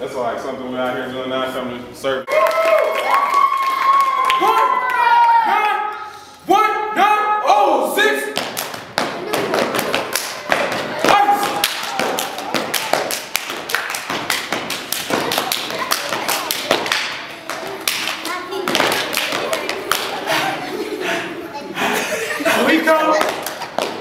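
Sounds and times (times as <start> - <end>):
men clapping: 2.3 - 5.4, 11.0 - 20.3
men stamping feet: 8.4 - 17.8.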